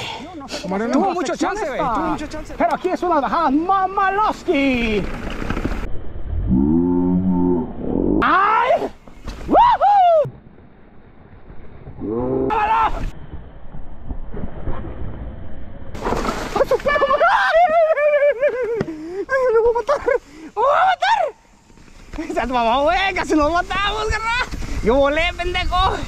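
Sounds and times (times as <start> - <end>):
men talking: 0.0 - 5.1, 22.2 - 26.0
bike rolling on dirt trail: 0.7 - 6.0, 9.0 - 9.7, 10.4 - 20.5, 21.4 - 26.0.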